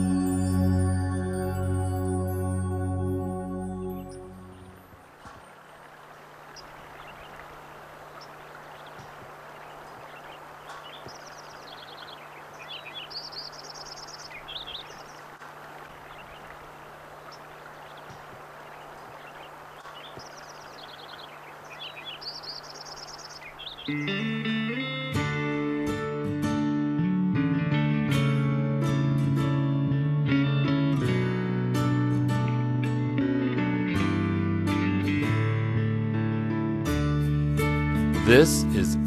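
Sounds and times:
songbird singing: 0:03.8 - 0:25.1
soft steady hiss: 0:04.4 - 0:24.0.

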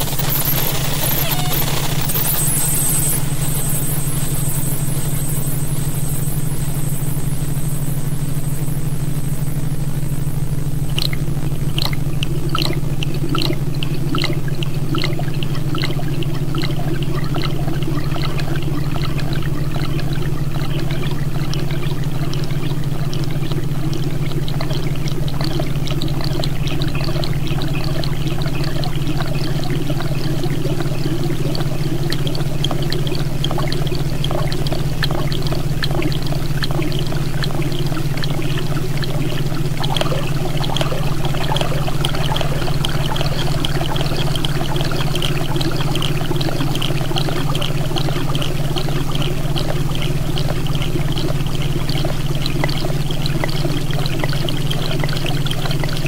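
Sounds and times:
dense crackling trickling texture: 0:00.0 - 0:05.6
low electronic drone: 0:00.0 - 0:55.6.

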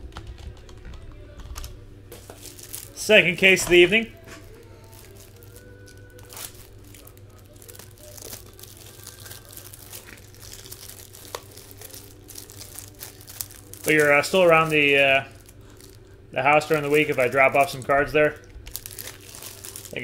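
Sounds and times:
low hum: 0:00.0 - 0:20.0
packaging crinkling and tearing: 0:01.4 - 0:20.0.

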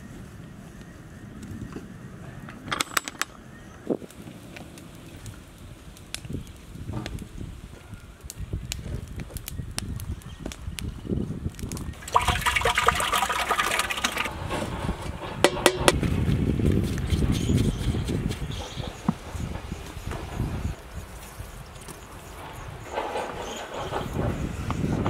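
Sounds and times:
fire flames rushing and crackling: 0:03.9 - 0:25.0.

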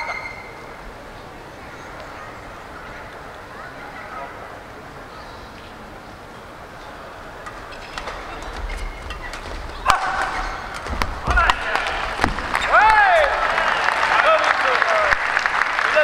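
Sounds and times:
racket hitting shuttlecock: 0:09.8 - 0:12.8
crowd cheering and shouting: 0:09.8 - 0:16.0.

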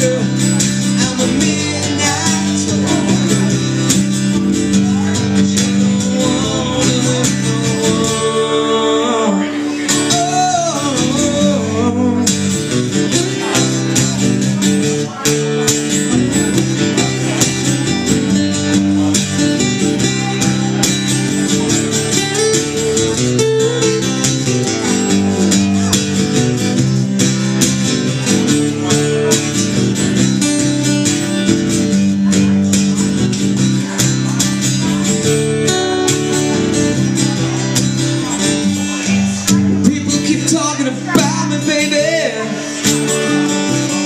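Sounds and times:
acoustic guitars strummed and picked: 0:00.0 - 0:44.0.

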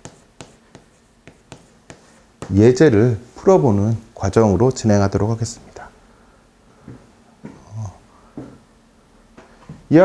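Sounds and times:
low voiced sound: 0:07.5 - 0:08.0.

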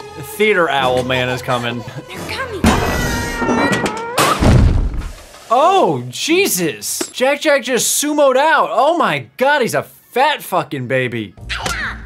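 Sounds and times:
background noise: 0:00.0 - 0:12.0
deep loud boom: 0:04.4 - 0:05.2.

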